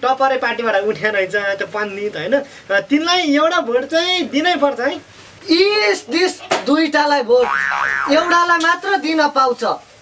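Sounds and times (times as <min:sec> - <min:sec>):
person speaking: 0:00.0 - 0:09.9
springy comedy boing: 0:07.4 - 0:08.4.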